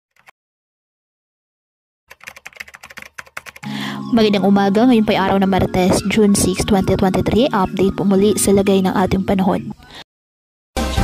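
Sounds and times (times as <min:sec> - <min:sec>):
rapid irregular clicking: 0:02.1 - 0:03.7
music: 0:03.6 - 0:09.9, 0:10.8 - 0:11.0.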